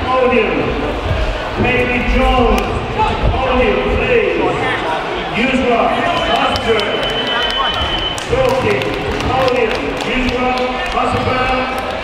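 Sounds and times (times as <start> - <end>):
overlapping voices: 5.9 - 12.0.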